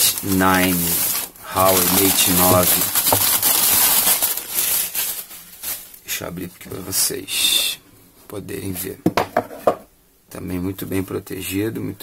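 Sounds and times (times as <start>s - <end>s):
paper crinkling and rustling: 0.0s - 7.0s.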